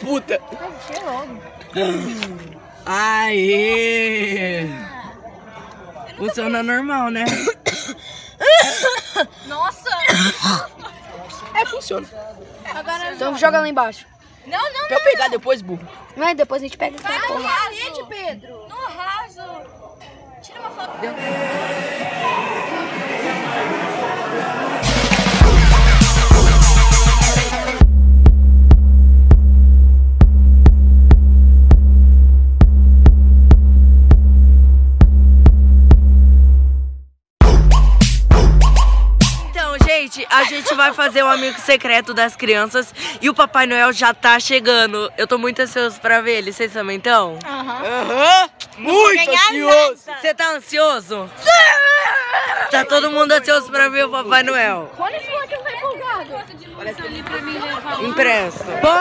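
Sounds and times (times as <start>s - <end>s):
people chattering: 0.0s - 27.8s, 39.4s - 59.0s.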